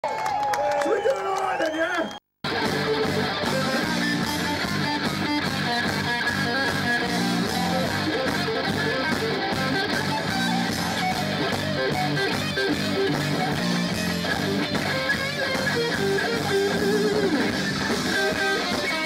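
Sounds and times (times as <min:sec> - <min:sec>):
drums: 0:02.4 - 0:19.0
electric guitar riff: 0:02.4 - 0:19.0.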